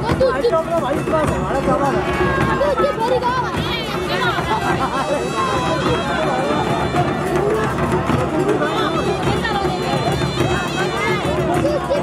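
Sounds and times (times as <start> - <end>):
crowd talking and calling: 0.0 - 12.0
drums: 0.0 - 12.0.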